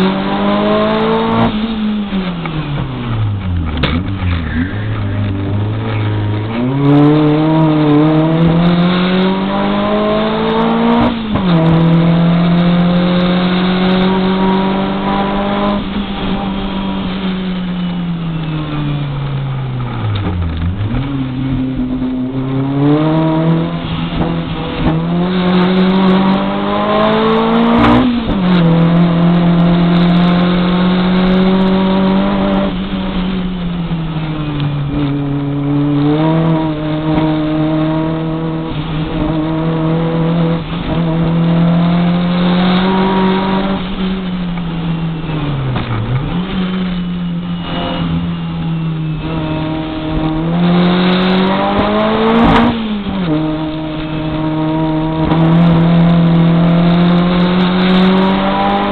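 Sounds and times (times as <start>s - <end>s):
race car engine at full throttle: 0.0s - 58.9s.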